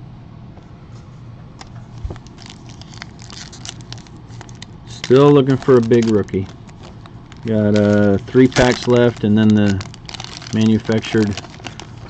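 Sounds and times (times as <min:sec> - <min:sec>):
foil wrapper crinkling and tearing: 0:01.9 - 0:12.0.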